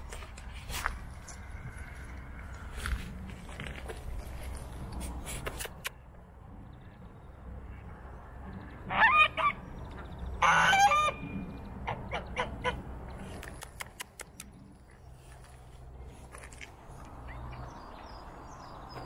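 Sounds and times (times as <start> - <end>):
geese honking: 8.8 - 9.7, 10.4 - 12.8.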